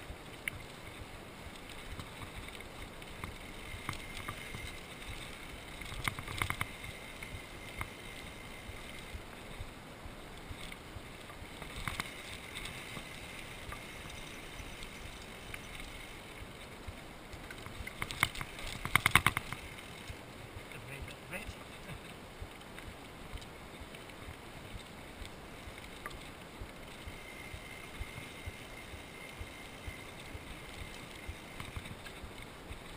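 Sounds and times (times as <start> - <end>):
wind: 0.0 - 32.9.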